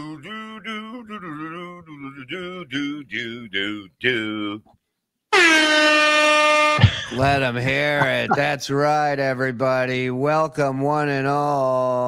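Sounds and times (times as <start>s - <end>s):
air horn blast: 5.3s - 7.2s.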